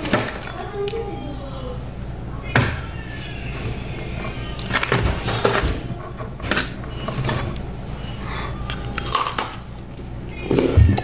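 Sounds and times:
chewing: 0:03.6 - 0:11.0
crisp cracker crunches: 0:08.6 - 0:09.7.

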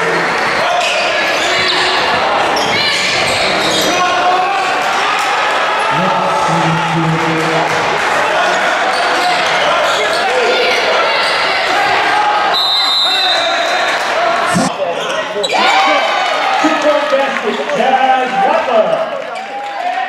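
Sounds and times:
crowd voices and shouts: 0:00.0 - 0:20.0
referee's whistle: 0:12.5 - 0:13.7.

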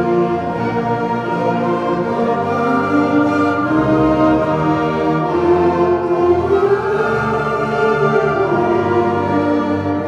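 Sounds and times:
concert band with strings playing chords: 0:00.0 - 0:10.0.

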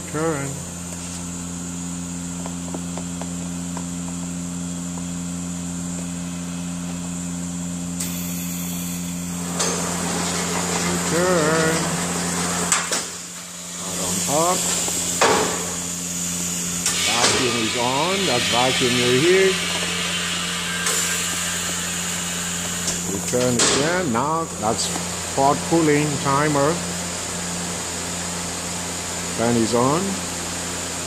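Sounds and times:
machine motor hum: 0:00.0 - 0:31.0.

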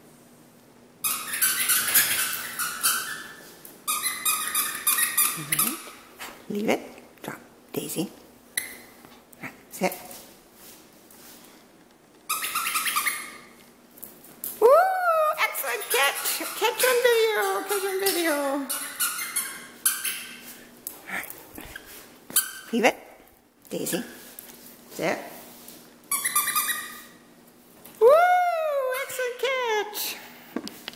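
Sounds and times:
squeaky dog toy squeaking: 0:01.0 - 0:06.0, 0:12.3 - 0:13.5, 0:15.6 - 0:20.4, 0:26.1 - 0:27.2
person cheering loudly: 0:14.6 - 0:15.4.

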